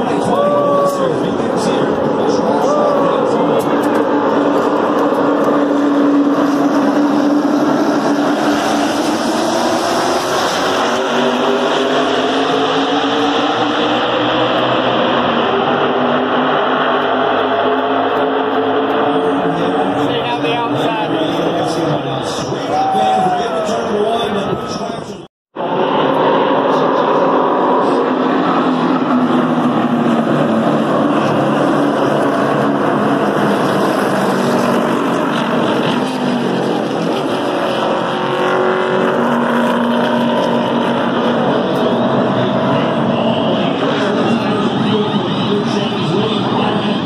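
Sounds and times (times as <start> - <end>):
race car engines running: 0.0 - 47.0.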